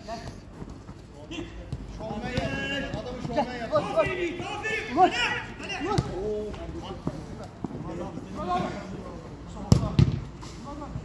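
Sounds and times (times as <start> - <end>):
distant players shouting: 2.1 - 6.3.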